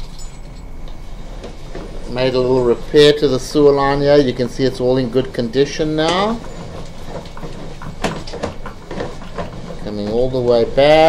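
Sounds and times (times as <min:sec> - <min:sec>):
steady low hum: 0:00.0 - 0:11.0
cable clicking and knocking: 0:06.0 - 0:10.2.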